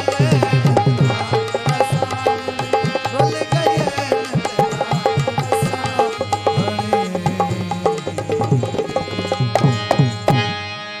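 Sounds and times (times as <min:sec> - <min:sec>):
tabla drumming: 0:00.0 - 0:10.7
held chord: 0:00.0 - 0:11.0.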